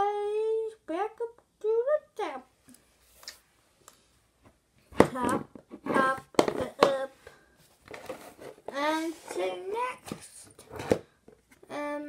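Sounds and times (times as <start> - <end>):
girl making wordless vocal sounds: 0.0 - 2.5, 11.7 - 12.0.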